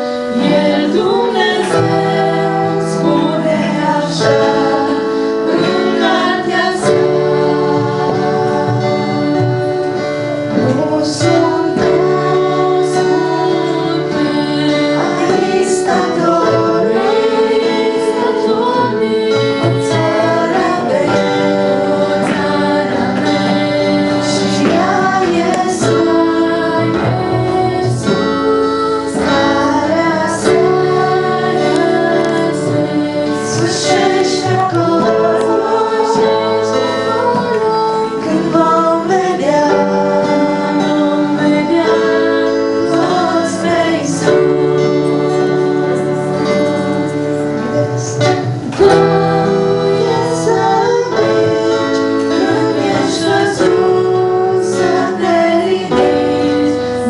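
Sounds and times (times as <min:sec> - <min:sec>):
acoustic guitar: 0:00.0 - 0:57.0
sustained keyboard chords: 0:00.0 - 0:57.0
women singing: 0:00.0 - 0:57.0.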